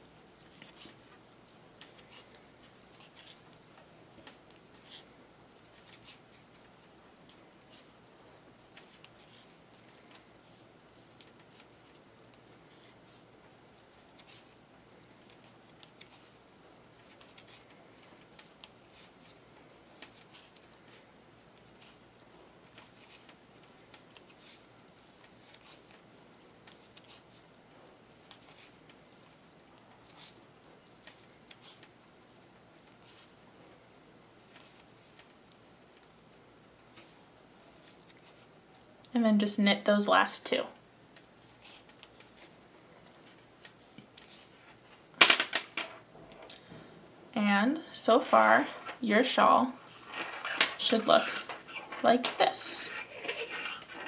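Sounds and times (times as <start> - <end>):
room hiss: 0.0 - 54.0
yarn handling: 48.6 - 54.0.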